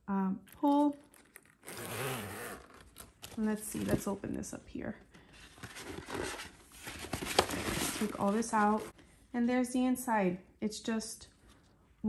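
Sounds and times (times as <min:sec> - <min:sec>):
paper and cardboard rustling: 0:02.6 - 0:04.4, 0:05.1 - 0:09.0.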